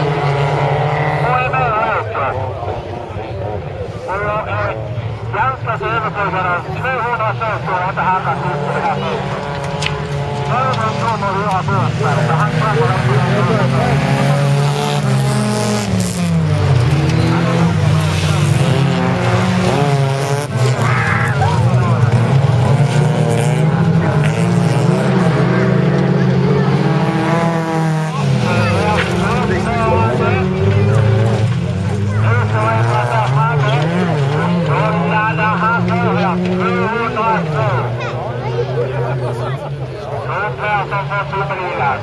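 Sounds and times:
race car engines revving: 0.0 - 42.0.

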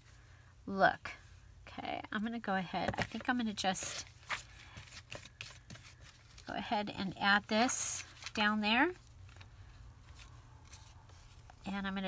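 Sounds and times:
low steady hum: 0.0 - 12.0
fabric and paper rustling: 2.9 - 12.0
light scrapes of fabric and paper: 9.3 - 11.6.

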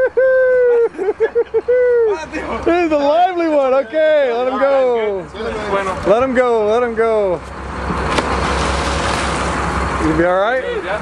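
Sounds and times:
boat engine hum: 0.0 - 11.0
rushing water: 7.7 - 11.0
sharp splash: 8.0 - 9.8.

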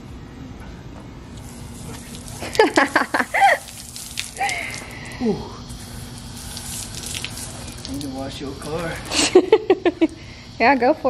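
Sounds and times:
hose water spraying on concrete: 1.4 - 10.9.

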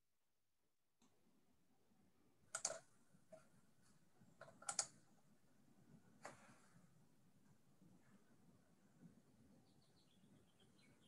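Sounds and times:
computer mouse clicks: 2.5 - 3.5, 4.4 - 5.0.

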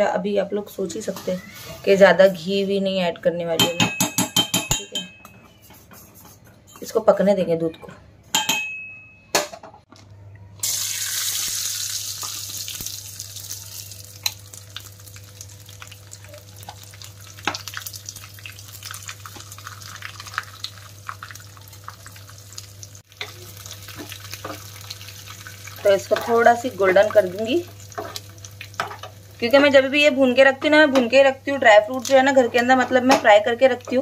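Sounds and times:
spoon clinking against steel pot: 3.6 - 5.8, 8.3 - 9.1
steel spoon stirring and scraping: 5.3 - 7.0
nuts sizzling in hot ghee: 10.6 - 30.4.

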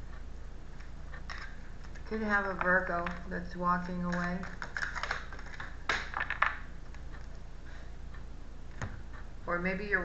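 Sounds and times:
cards being shuffled: 3.8 - 6.6.

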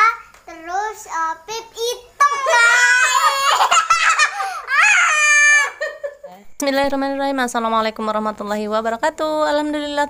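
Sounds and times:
boy laughing: 2.2 - 6.3
woman laughing: 5.6 - 6.4.

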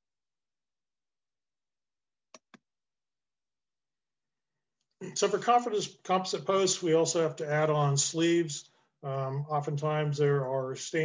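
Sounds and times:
computer mouse clicks: 2.3 - 2.6.

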